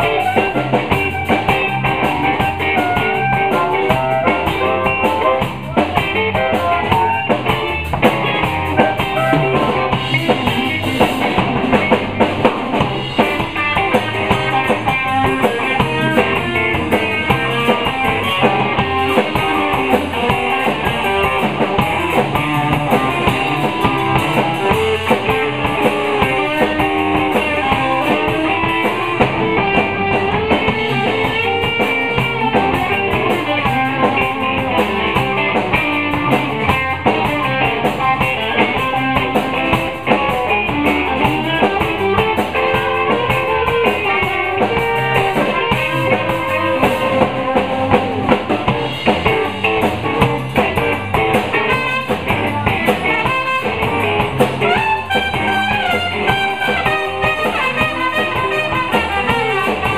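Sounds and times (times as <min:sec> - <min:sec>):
trumpet playing: 0:00.0 - 0:05.4, 0:51.6 - 0:59.9
live blues band: 0:00.0 - 0:59.9.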